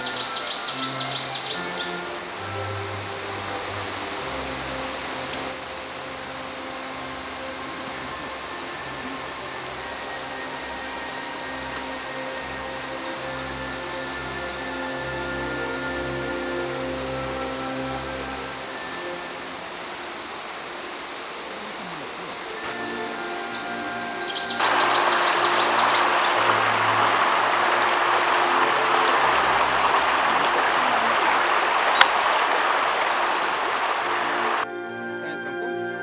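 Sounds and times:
bird chirps: 0.0 - 2.0, 22.8 - 34.6
background music: 0.0 - 20.0, 22.6 - 36.0
river rushing over rocks: 24.6 - 34.6.

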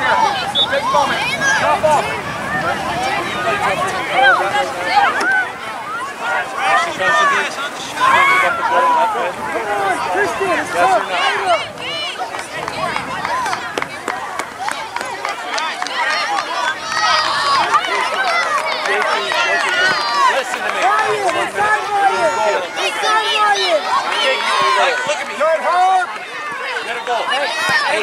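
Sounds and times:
crowd chatter: 0.0 - 28.0.

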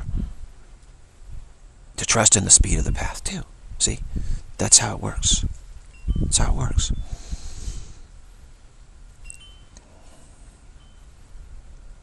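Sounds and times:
low steady background noise: 0.0 - 12.0
faint high-pitched tinkles: 5.8 - 7.2, 9.2 - 11.4
soft breath: 7.0 - 8.1, 9.8 - 10.7.

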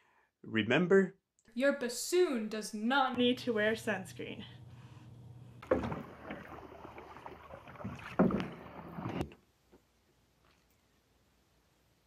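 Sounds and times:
canoe paddles in water: 5.6 - 9.3
paddle splashes and knocks: 5.6 - 9.4.

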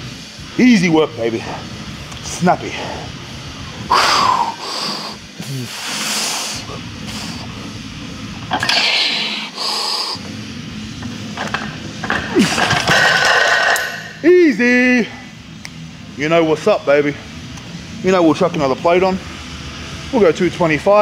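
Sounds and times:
sharp hissing breaths: 3.8 - 7.7, 8.6 - 10.3.

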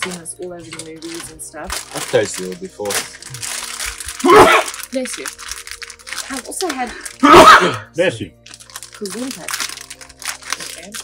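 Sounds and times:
plastic bag crinkling: 0.0 - 7.7, 8.3 - 11.0
soft background music: 0.0 - 11.0.

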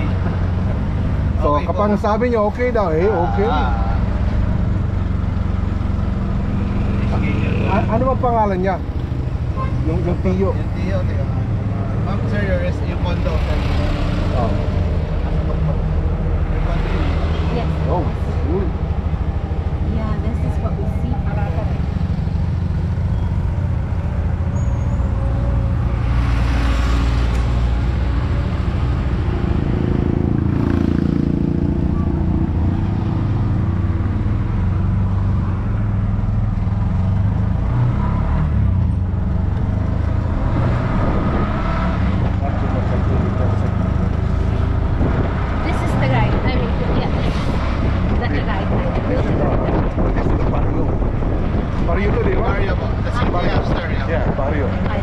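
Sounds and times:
road noise: 0.0 - 55.0.

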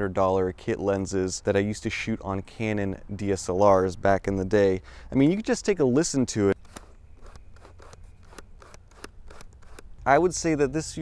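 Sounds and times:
plastic lens ring clicking and rubbing: 6.6 - 10.0.

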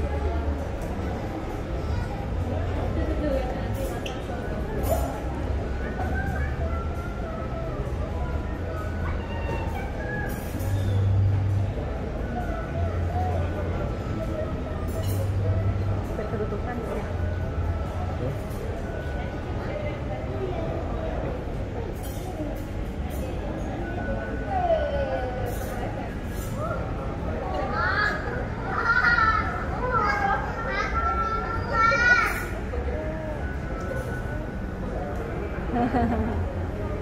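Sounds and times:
low mechanical hum: 0.0 - 37.0.

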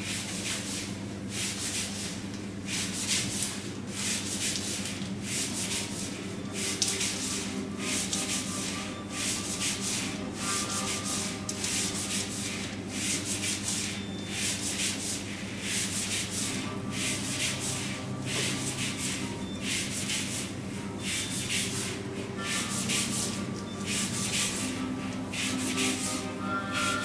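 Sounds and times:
rubbing or scratching strokes: 0.0 - 27.0.

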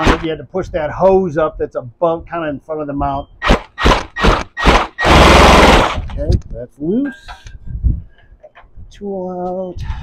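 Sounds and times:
impact wrench hammering: 3.4 - 6.1.

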